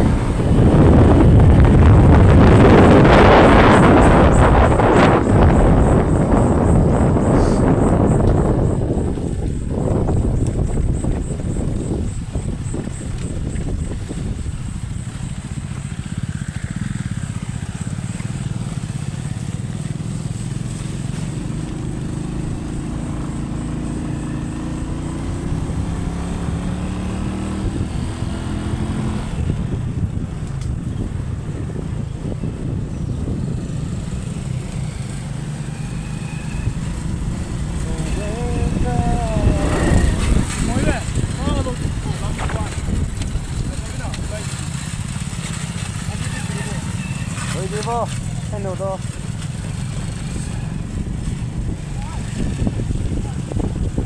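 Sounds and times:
motorcycle engine running: 0:00.0 - 0:54.0
wind and road noise: 0:00.0 - 0:54.0.

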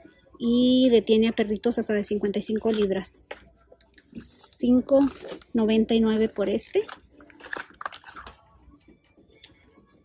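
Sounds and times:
store background noise: 0:00.0 - 0:10.0
packaged merchandise rustling: 0:02.3 - 0:08.5.

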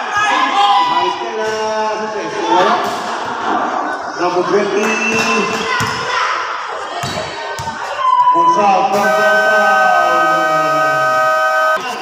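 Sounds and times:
spectators chattering: 0:08.9 - 0:12.0.

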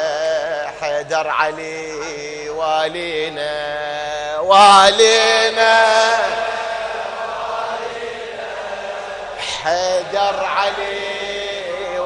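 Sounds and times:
man chanting through microphone: 0:00.0 - 0:08.3, 0:09.1 - 0:12.0
echo and crowd voices: 0:00.0 - 0:12.0.

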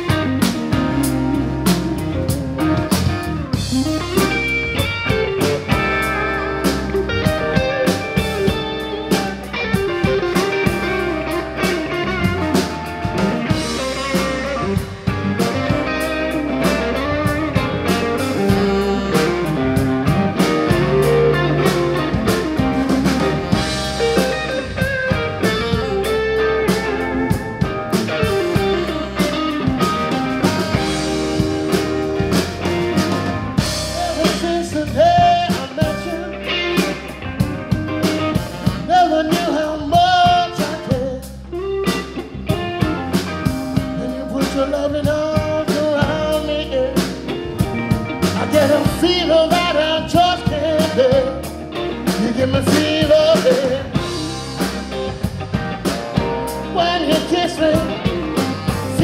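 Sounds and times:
bass guitar: 0:00.0 - 0:59.0
drum kit beat: 0:00.0 - 0:59.0
electric guitar: 0:00.0 - 0:59.0.

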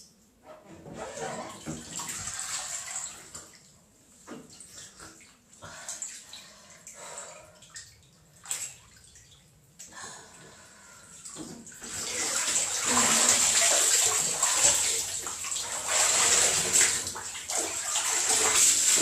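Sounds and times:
water rushing in bathtub: 0:00.9 - 0:03.6, 0:11.2 - 0:19.0.

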